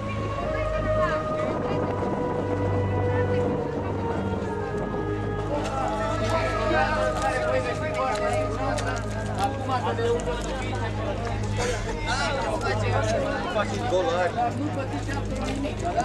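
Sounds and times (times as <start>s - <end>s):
steady low hum: 0.0s - 15.0s
people talking and calling out: 0.0s - 16.0s.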